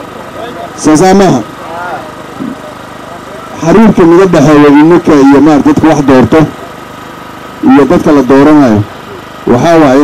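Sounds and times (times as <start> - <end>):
steady background noise: 0.0 - 10.0
man speaking into a microphone: 0.4 - 1.6, 3.4 - 6.6, 7.6 - 10.0.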